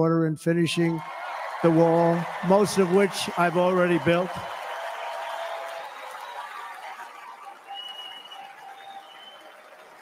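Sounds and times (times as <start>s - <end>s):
crowd applauding: 0.8s - 10.0s.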